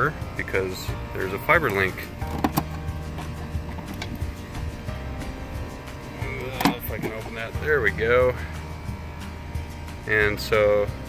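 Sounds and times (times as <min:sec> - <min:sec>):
steady background hum: 0:00.0 - 0:11.0
plastic latch clicks: 0:02.3 - 0:02.8.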